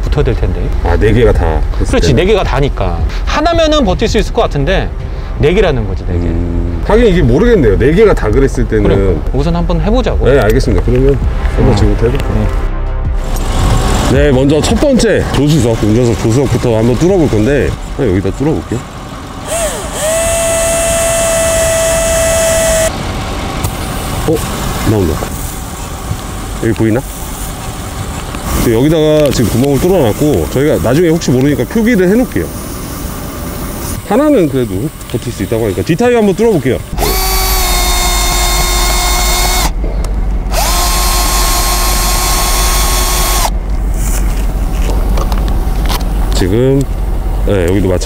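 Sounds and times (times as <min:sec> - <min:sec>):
cordless drill whining: 0:19.5 - 0:22.9, 0:37.0 - 0:39.8, 0:40.5 - 0:43.5.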